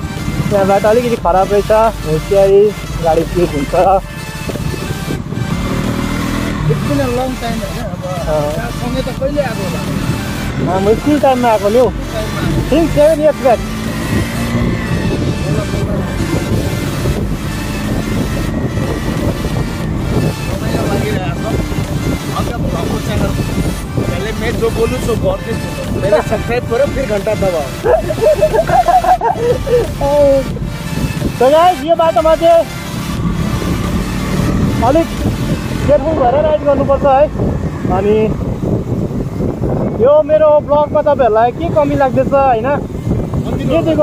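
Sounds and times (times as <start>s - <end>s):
motorcycle engine running: 0.0s - 44.0s
wind rushing over microphone: 0.0s - 44.0s.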